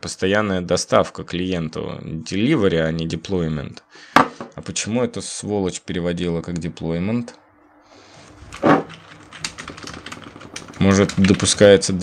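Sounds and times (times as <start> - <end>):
man talking: 0.0 - 3.9, 4.5 - 7.5, 10.8 - 12.0
typing on computer keyboard: 8.2 - 12.0.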